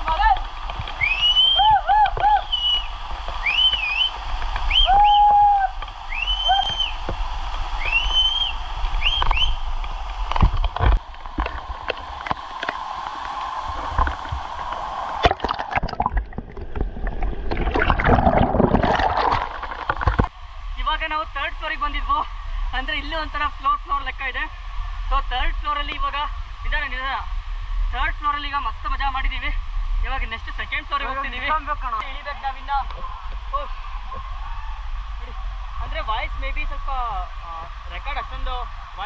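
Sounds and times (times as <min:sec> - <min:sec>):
waterfall rushing: 0:00.0 - 0:16.2
short whistles: 0:01.0 - 0:07.0, 0:07.8 - 0:09.6
underwater gurgling bubbles: 0:10.2 - 0:20.3.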